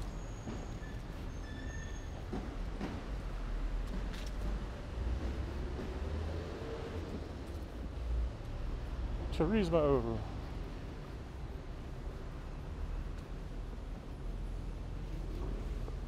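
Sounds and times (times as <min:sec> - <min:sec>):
traffic rumble: 0:00.0 - 0:16.0.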